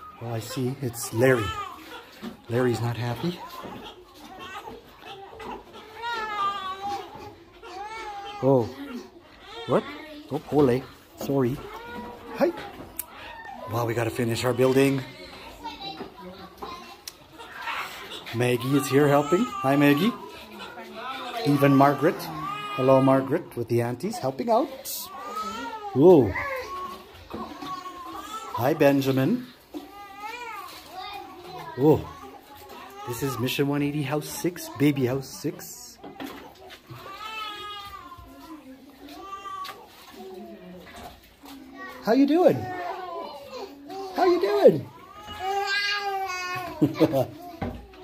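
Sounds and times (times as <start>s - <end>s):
small children babbling: 0.0s - 13.7s, 14.9s - 23.3s, 24.7s - 48.0s.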